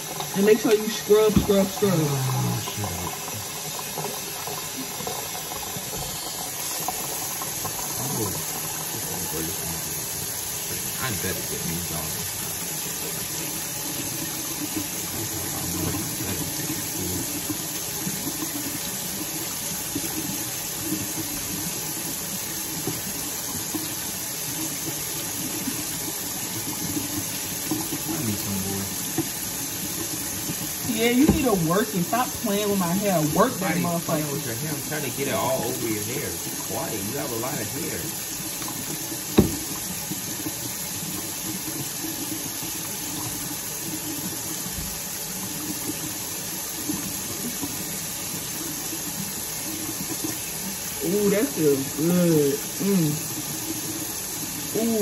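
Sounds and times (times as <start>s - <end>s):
faucet water running: 0.0s - 55.0s.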